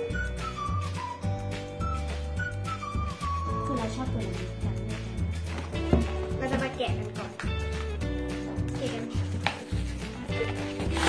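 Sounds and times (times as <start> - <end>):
background music: 0.0 - 11.0
plastic crackle: 10.4 - 11.0
plastic packaging being pulled open: 10.4 - 11.0.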